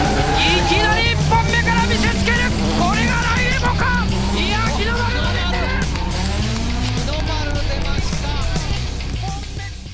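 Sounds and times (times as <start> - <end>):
background music: 0.0 - 9.9
car engine running: 0.0 - 9.9
commentary voices: 0.0 - 9.9.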